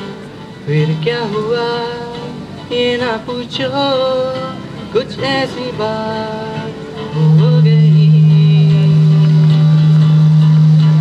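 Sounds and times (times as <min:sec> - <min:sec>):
acoustic guitar: 0:00.0 - 0:11.0
man singing a long low note: 0:00.0 - 0:11.0.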